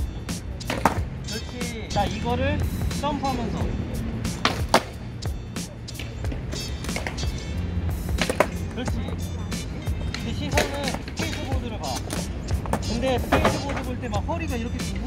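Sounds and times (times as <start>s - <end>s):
background music: 0.0s - 15.0s
skateboards knocking on concrete: 0.6s - 1.1s, 4.3s - 5.0s, 8.1s - 14.0s.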